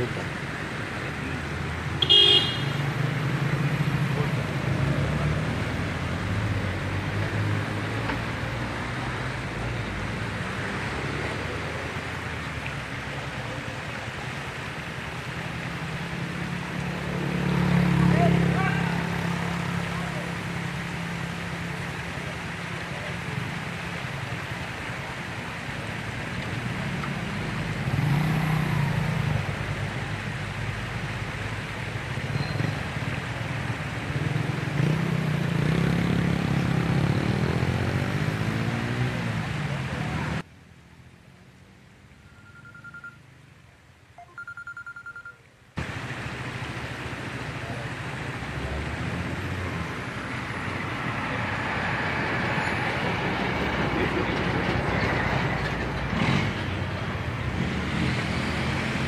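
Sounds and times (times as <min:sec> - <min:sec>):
vehicles passing on highway: 0:00.0 - 0:59.0.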